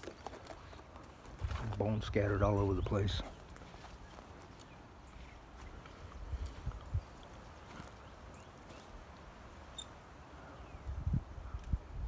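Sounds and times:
footsteps crunching on dry grass: 0.0s - 9.1s
wind buffeting microphone: 5.7s - 7.4s, 10.6s - 12.0s.

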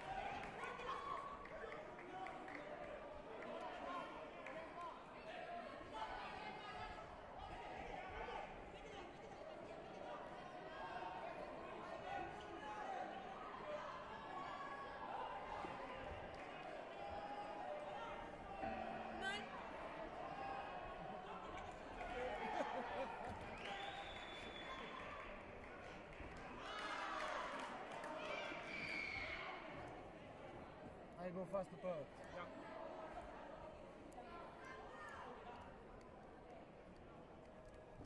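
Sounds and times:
murmuring voices: 17.2s - 23.3s.

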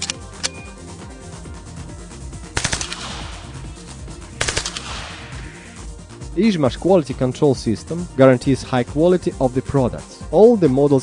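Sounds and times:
submachine gun bursts: 2.6s - 3.3s, 4.4s - 5.1s.

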